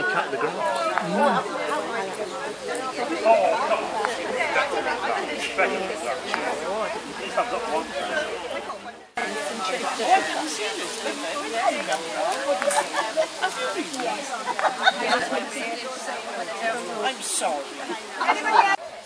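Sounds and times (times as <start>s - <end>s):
group of people chattering: 0.0s - 19.0s.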